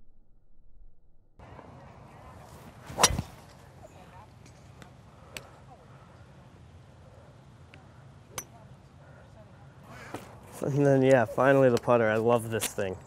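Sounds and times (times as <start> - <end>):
golf club striking ball: 2.9 - 3.6.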